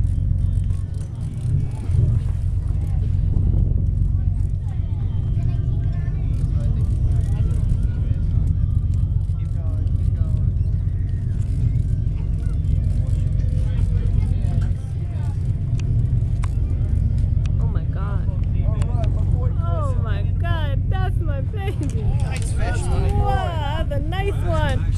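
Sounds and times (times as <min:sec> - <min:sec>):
boat engine humming: 0:00.0 - 0:24.9
voices: 0:00.0 - 0:24.9
excited voices: 0:16.4 - 0:24.9.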